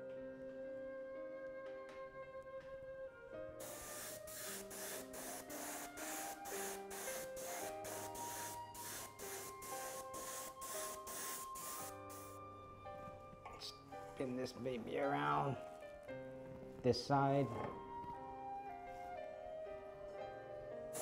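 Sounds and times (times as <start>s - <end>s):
soft instrumental music: 0.0s - 21.0s
airbrush hissing in pulses: 3.6s - 12.4s.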